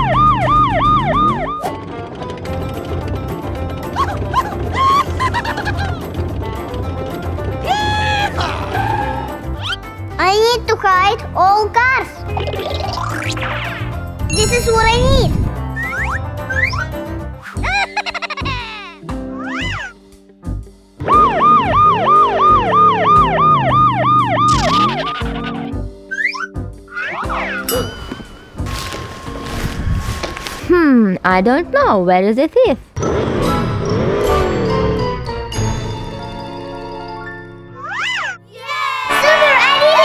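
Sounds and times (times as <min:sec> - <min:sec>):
police siren wailing: 0:00.0 - 0:01.8, 0:21.0 - 0:25.4
background music: 0:00.0 - 0:40.0
sliding cartoon sound effects: 0:21.1 - 0:27.9
children shouting and cheering: 0:37.8 - 0:40.0.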